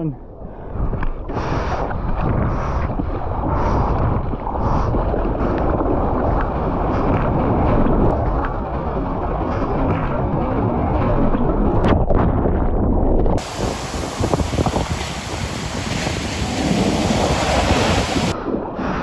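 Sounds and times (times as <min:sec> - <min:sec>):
churning water underwater: 0:00.2 - 0:19.0
surf crashing on beach: 0:13.4 - 0:18.4
water sloshing: 0:13.4 - 0:18.4.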